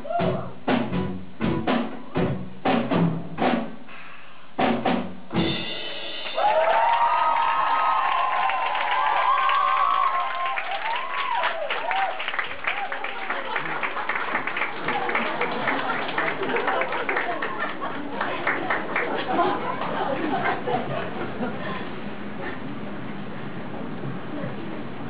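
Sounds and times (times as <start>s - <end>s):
rock band drum hits: 0.1s - 3.8s, 4.6s - 6.5s
audience cheering and screaming: 6.0s - 17.6s
audience clapping: 6.2s - 21.4s.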